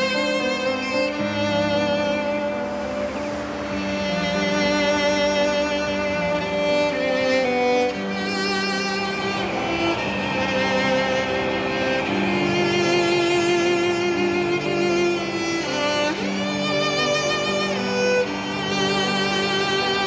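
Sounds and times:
bowed strings film score: 0:00.0 - 0:20.0.

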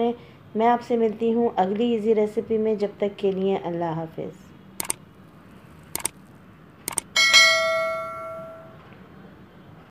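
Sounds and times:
sharp double clicks: 0:04.8 - 0:05.1, 0:05.7 - 0:06.2, 0:06.8 - 0:07.2
bell ringing out: 0:07.2 - 0:08.8.

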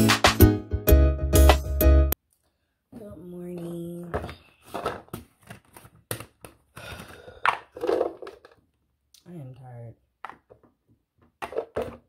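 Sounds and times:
woman's wordless held voice: 0:03.0 - 0:04.3
breaths and small vocal noises: 0:06.6 - 0:08.6.

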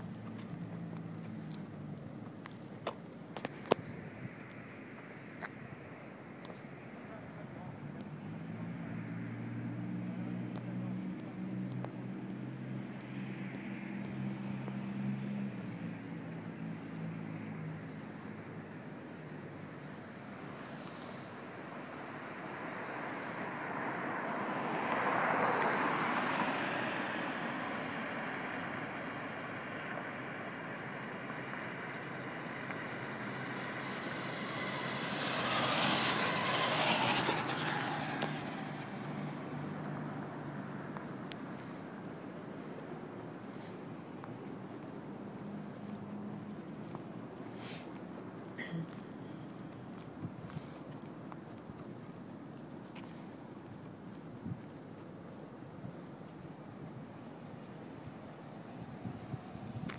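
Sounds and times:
vehicles passing: 0:00.0 - 0:59.9.

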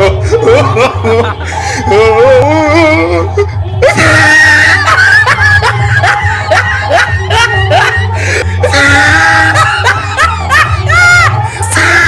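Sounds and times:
music with heavy bass: 0:00.0 - 0:12.0
person screaming: 0:03.8 - 0:05.3, 0:08.6 - 0:12.0.

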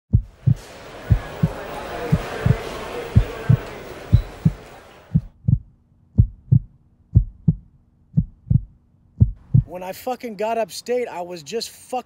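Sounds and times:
heartbeat thumps: 0:00.1 - 0:09.8.

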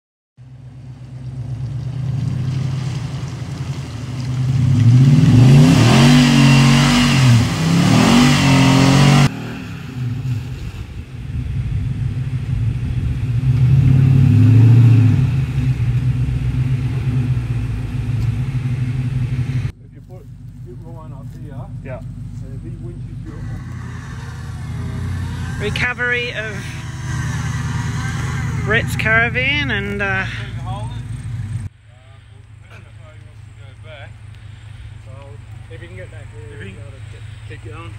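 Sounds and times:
engine revving hard: 0:04.6 - 0:11.0, 0:13.3 - 0:19.7, 0:22.8 - 0:31.7
person speaking: 0:20.7 - 0:26.9, 0:28.1 - 0:31.1.

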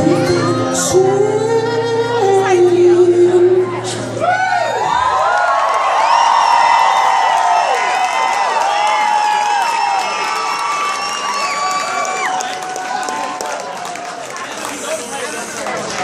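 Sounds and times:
audience cheering and whooping: 0:04.2 - 0:15.1
audience applauding: 0:04.8 - 0:16.0.

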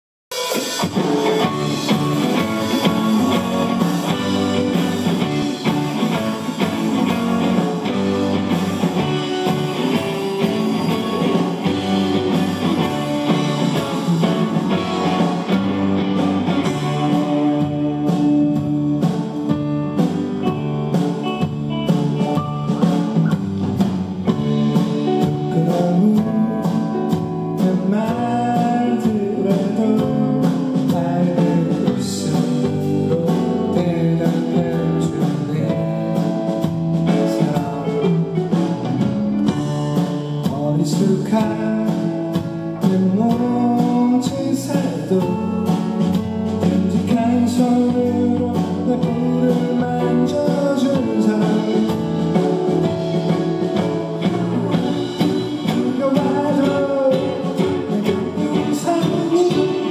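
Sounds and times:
drum kit: 0:00.3 - 0:59.9
electric guitar: 0:00.3 - 0:59.9
man singing: 0:01.8 - 0:08.0, 0:16.7 - 0:19.4, 0:25.1 - 0:38.6, 0:40.4 - 0:52.7, 0:53.8 - 0:59.9.

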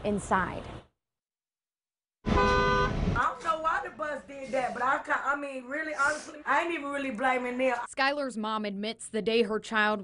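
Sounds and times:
bus horn chord: 0:02.2 - 0:03.1.

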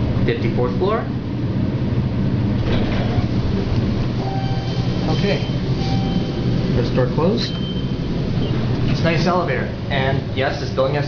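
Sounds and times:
elevator car rumble: 0:00.0 - 0:11.0
rushing air: 0:01.2 - 0:10.4.

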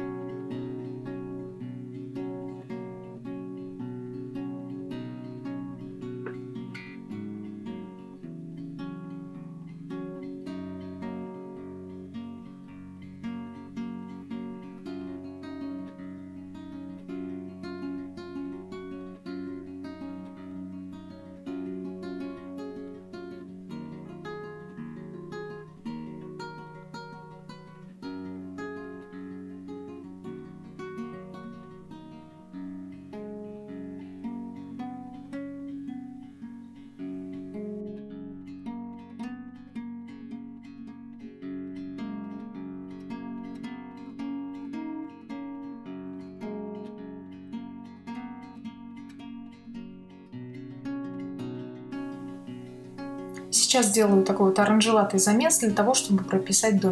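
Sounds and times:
acoustic guitar plucked notes: 0:00.0 - 0:56.9.

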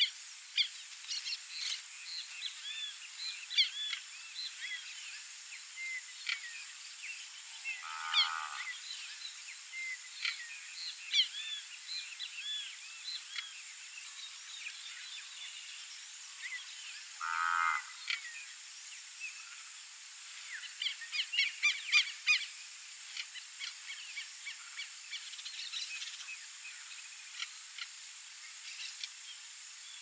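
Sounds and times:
small birds chirping: 0:00.0 - 0:17.1.

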